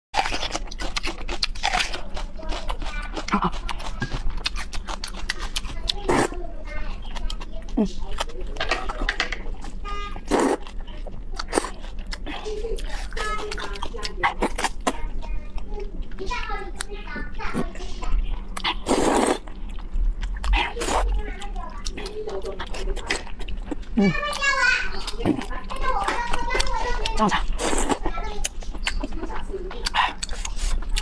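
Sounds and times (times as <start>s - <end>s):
crunchy onion bite: 0.2s - 6.4s, 18.6s - 21.0s
slurping and chewing noodles: 0.2s - 6.4s, 9.6s - 31.0s.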